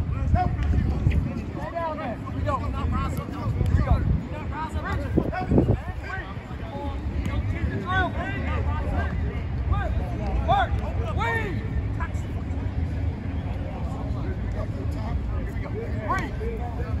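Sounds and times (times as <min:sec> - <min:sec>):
wind rumble on microphone: 0:00.0 - 0:02.2, 0:02.9 - 0:06.7.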